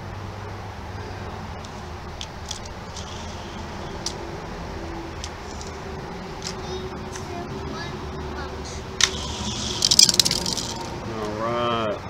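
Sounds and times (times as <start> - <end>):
toy cars clattering on plastic track: 9.0 - 10.9.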